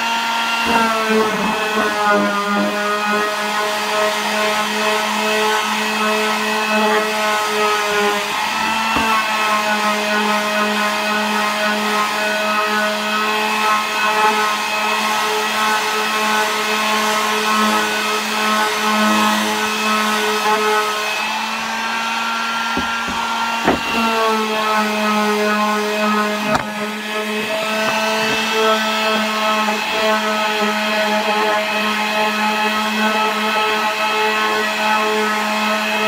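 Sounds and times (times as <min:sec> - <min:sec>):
electric palm sander running: 0:00.0 - 0:36.0
sanding pad scratching wood: 0:00.6 - 0:36.0
short knocks: 0:22.7 - 0:24.1.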